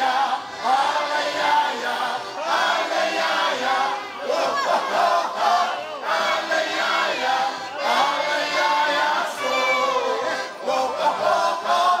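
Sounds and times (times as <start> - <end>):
accordion: 0.0 - 12.0
men singing calls together: 0.0 - 12.0.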